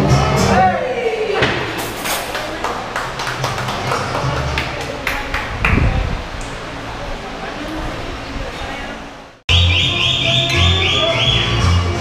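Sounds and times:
voices: 4.0 - 11.9
background music: 9.5 - 12.0.

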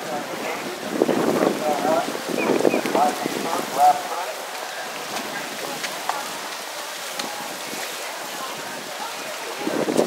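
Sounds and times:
wind noise on microphone: 0.0 - 4.1, 5.0 - 10.0.

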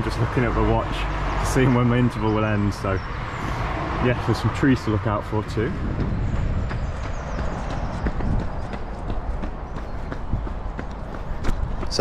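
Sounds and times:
running footsteps on tarmac: 0.0 - 12.0
wind rumbling on microphone: 0.0 - 12.0.

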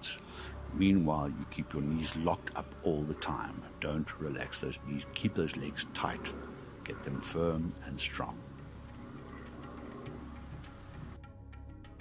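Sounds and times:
quiet instrumental music: 0.0 - 12.0.

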